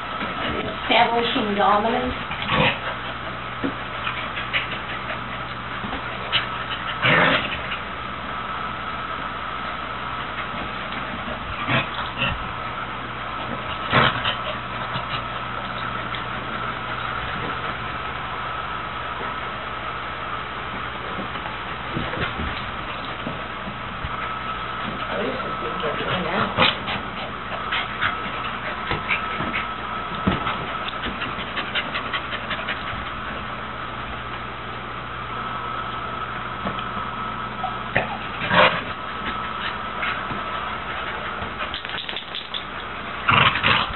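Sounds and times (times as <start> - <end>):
steady electrical hum: 0.0 - 43.9.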